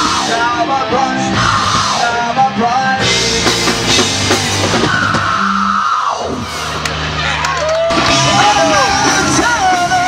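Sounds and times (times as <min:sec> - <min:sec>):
heavy rock band playing live: 0:00.0 - 0:10.0.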